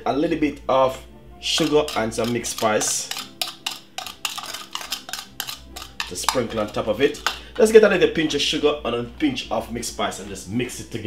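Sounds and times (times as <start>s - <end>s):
metal spoon clinking against bowl: 1.6s - 7.5s.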